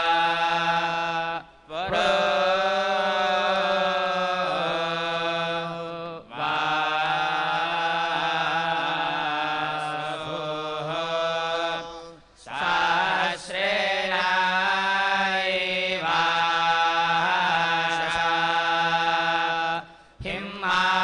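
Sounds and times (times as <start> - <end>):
men chanting into microphones: 0.0 - 21.0.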